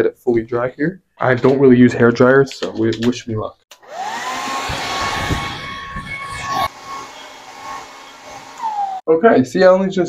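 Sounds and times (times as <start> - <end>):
hair dryer running: 3.7 - 9.0.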